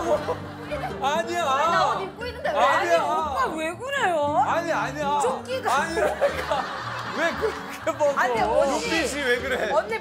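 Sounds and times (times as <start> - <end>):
people laughing: 0.0 - 1.6, 5.7 - 10.0
background music: 0.0 - 10.0.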